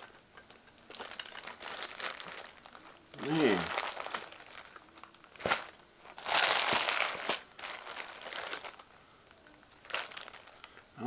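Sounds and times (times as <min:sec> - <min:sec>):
plastic bags crinkling: 0:00.0 - 0:10.8.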